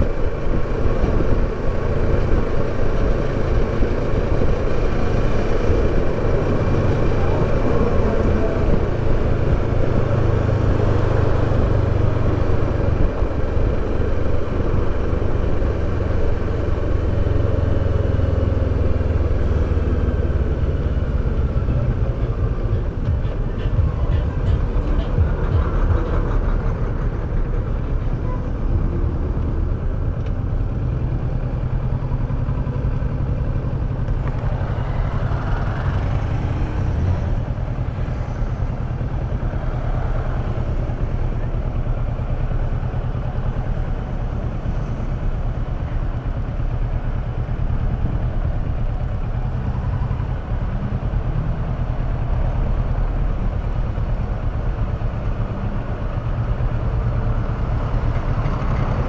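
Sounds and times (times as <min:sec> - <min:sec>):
motorcycle engine running: 0:00.0 - 0:59.0
road traffic: 0:00.0 - 0:59.0.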